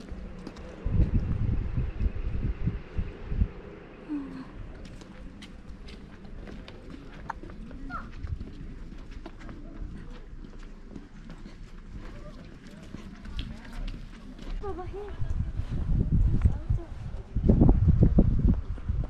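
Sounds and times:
faint voices: 4.0s - 17.6s.

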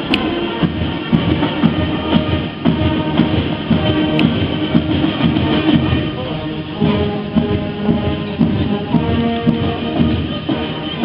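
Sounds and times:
brass band playing: 0.0s - 11.0s.

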